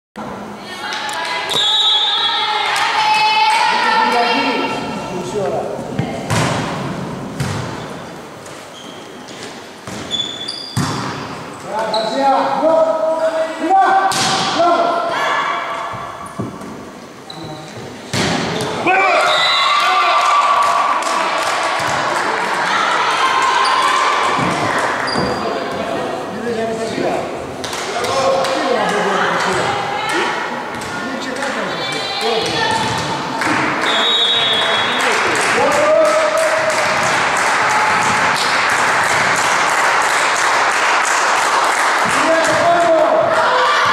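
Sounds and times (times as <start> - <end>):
people shouting and cheering: 0.6 - 5.1, 18.8 - 25.3, 31.6 - 43.9
volleyball hits echoing: 5.9 - 7.9, 10.7 - 11.5, 14.1 - 14.7, 18.1 - 18.9, 20.6 - 22.5, 24.1 - 25.4, 27.6 - 34.0, 34.8 - 43.9.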